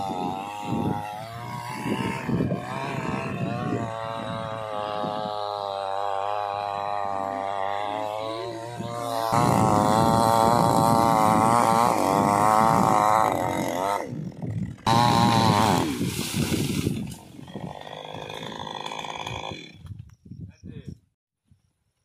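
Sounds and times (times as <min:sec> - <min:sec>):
chainsaw cutting wood: 0:00.0 - 0:20.0.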